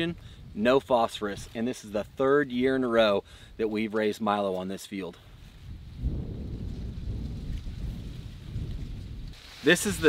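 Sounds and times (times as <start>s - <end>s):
wind buffeting microphone: 5.3s - 10.0s.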